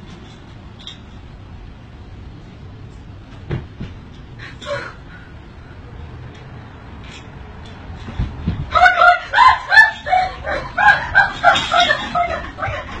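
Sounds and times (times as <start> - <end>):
woman screaming: 8.7 - 11.1.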